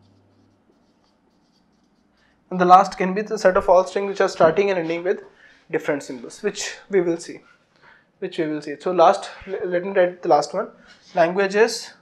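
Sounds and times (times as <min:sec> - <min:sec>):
marker scratching on whiteboard: 0:00.0 - 0:05.2.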